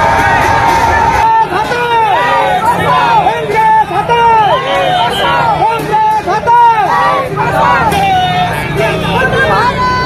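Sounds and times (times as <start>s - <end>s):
crowd of protesters shouting: 0.0s - 10.0s.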